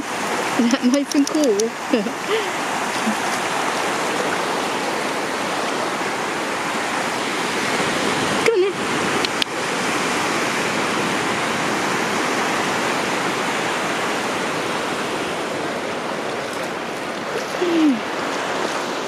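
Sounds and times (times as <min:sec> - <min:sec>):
small waves breaking on shore: 0:00.0 - 0:19.0.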